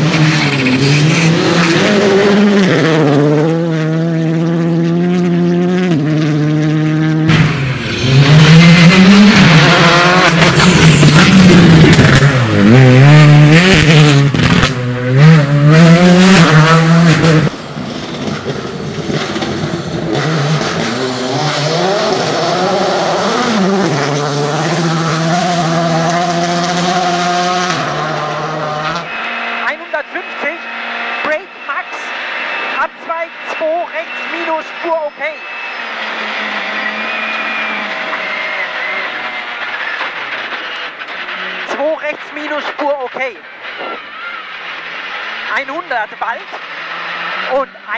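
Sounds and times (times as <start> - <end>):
rally car engine revving: 0.0 - 47.9.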